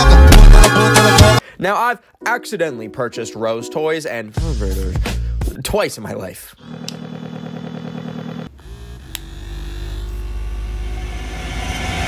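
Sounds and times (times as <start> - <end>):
vibrator buzzing in pulses: 6.6 - 11.4.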